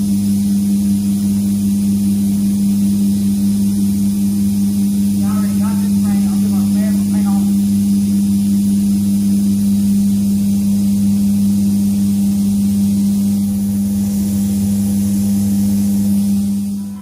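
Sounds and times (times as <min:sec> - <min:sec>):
ventilation fan humming: 0:00.0 - 0:17.0.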